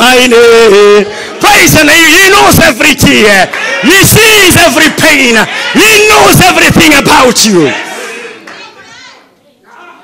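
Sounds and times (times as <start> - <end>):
congregation murmuring and calling out: 0.0 - 10.0
loud shout echoing: 0.0 - 10.0.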